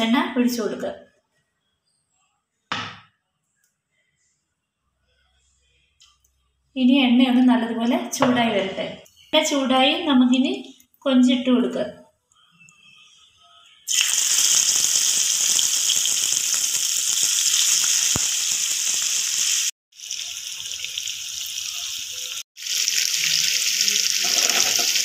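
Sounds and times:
woman's voice: 0:00.0 - 0:01.0, 0:06.8 - 0:12.0
prawns sizzling in hot oil: 0:13.9 - 0:25.0.

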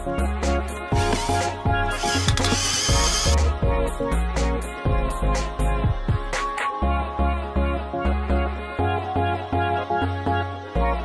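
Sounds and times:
background music with steady beat: 0:00.0 - 0:11.0
cordless drill whirring: 0:01.0 - 0:03.4.

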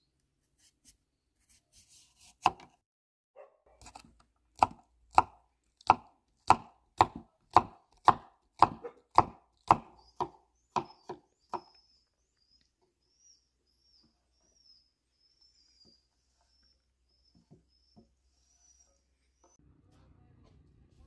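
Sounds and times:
knife chopping on wooden board: 0:02.4 - 0:02.8, 0:03.8 - 0:11.7.

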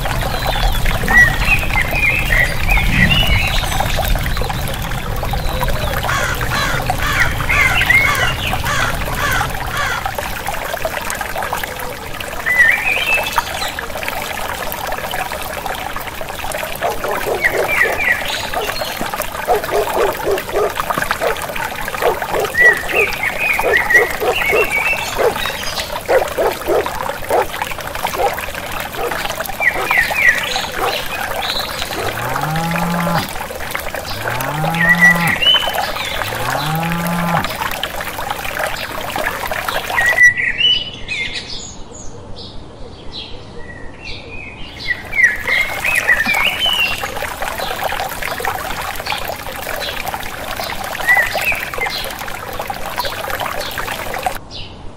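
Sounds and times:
birds chirping: 0:00.0 - 0:10.2, 0:16.7 - 0:37.6
trickle of running water: 0:00.0 - 0:40.3, 0:44.7 - 0:54.4
frogs croaking: 0:03.8 - 0:11.3, 0:16.2 - 0:40.2, 0:44.9 - 0:54.4.

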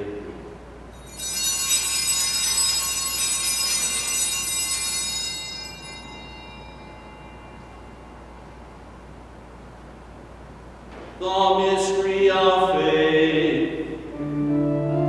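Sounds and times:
altar bells ringing: 0:00.9 - 0:09.2.

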